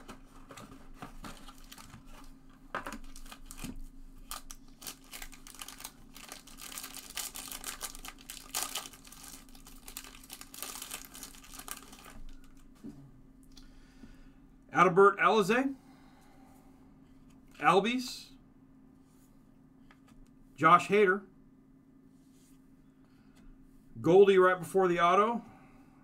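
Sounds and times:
foil wrapper crinkling and tearing: 1.4s - 2.3s, 2.9s - 12.6s.

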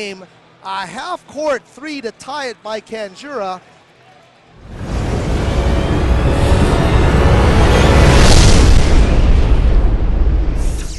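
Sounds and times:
deep rumbling boom: 4.6s - 10.9s
whoosh: 4.6s - 10.9s.

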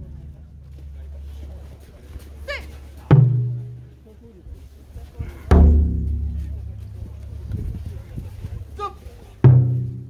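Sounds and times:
taiko drum ringing: 3.1s - 3.9s, 5.5s - 7.0s, 9.4s - 10.0s.

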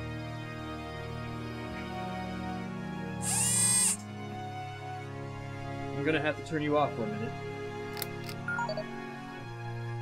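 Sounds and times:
soft background music: 0.0s - 10.0s
robot mechanical whir: 3.2s - 4.0s.

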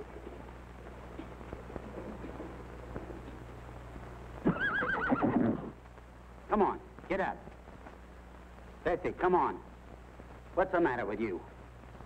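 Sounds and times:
horse whinnying: 4.4s - 5.8s.

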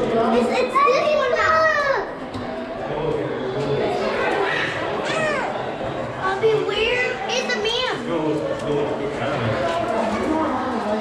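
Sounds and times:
child squealing: 5.0s - 5.6s.

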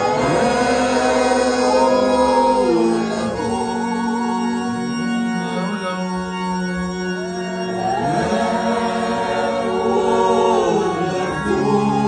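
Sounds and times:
group singing worship song: 0.0s - 4.2s, 7.8s - 12.0s.

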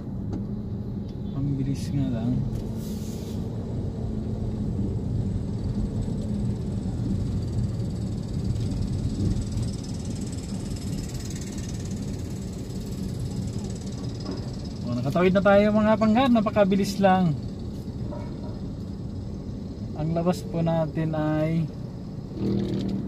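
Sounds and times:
road noise: 0.0s - 23.0s
vehicle engine rumble: 0.0s - 23.0s.

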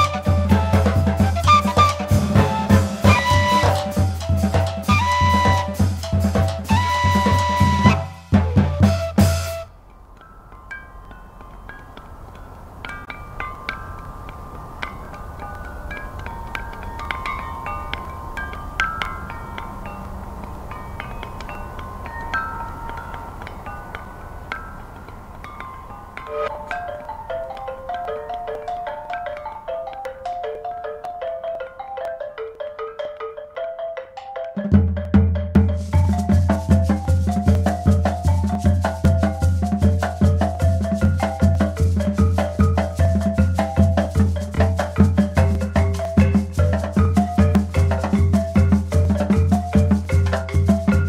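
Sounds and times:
drum kit playing fast rhythm: 0.0s - 9.7s, 34.6s - 51.0s
marimba short sparse notes: 0.0s - 9.7s, 26.2s - 51.0s
flutes playing melody: 0.0s - 9.8s, 26.2s - 27.6s
soft background hiss: 0.0s - 51.0s.

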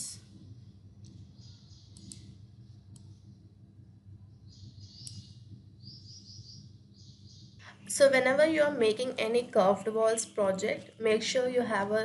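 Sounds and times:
soft high chirping: 0.0s - 3.6s, 4.2s - 7.7s
low steady hum: 0.0s - 12.0s
computer mouse clicks: 1.0s - 3.3s, 5.0s - 5.3s.

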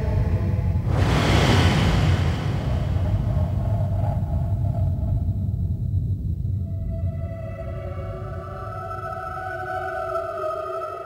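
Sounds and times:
steady deep rumble: 0.0s - 8.8s
noisy whoosh: 0.8s - 5.3s.

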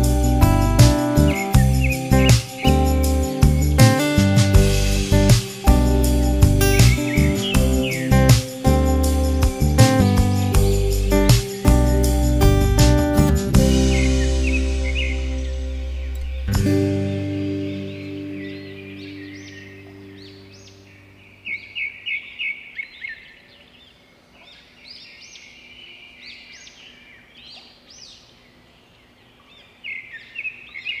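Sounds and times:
music chord ringing: 0.0s - 21.4s
small birds chirping: 0.0s - 31.0s.

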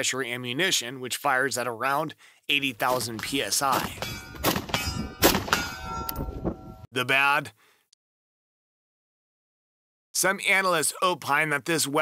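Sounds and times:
ringing metallic clang: 3.8s - 6.9s.

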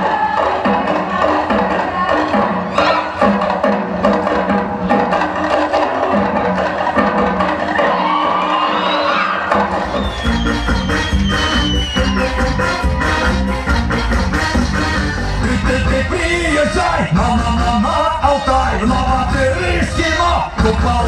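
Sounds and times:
band with drums bass and brass: 0.0s - 21.0s
percussion playing: 0.0s - 21.0s.

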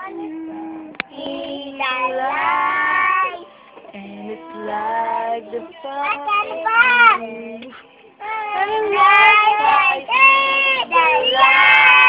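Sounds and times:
young children singing: 0.0s - 12.0s.

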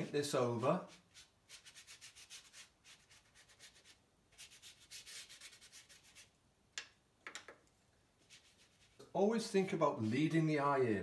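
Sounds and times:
paintbrush bristle strokes on paper: 0.0s - 6.4s, 8.2s - 10.4s.

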